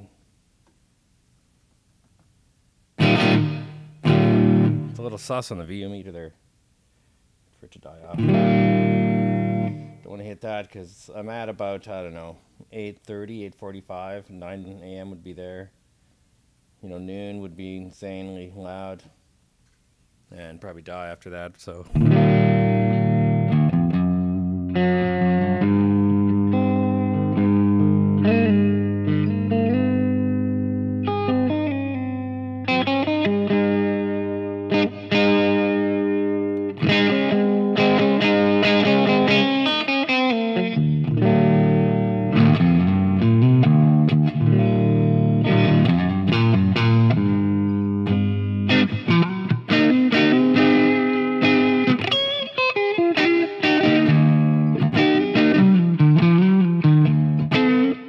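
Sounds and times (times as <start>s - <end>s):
overdriven electric guitar: 3.0s - 5.0s, 8.1s - 10.0s, 21.9s - 58.0s.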